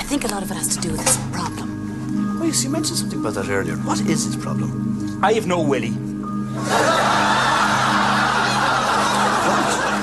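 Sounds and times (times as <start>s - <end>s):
audience laughing: 6.6s - 10.0s.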